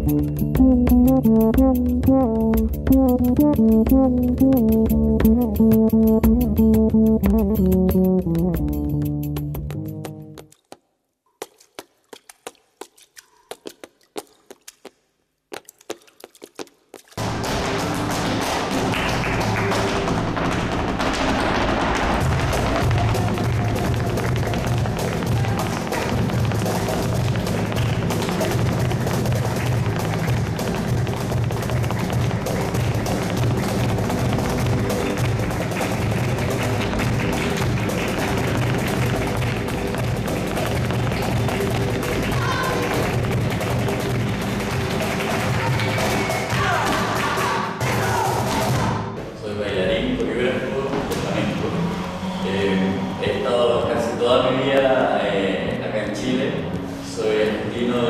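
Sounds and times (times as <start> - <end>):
dance shoes striking floor: 0.0 - 10.8, 15.6 - 49.1
hand clapping: 17.2 - 47.7.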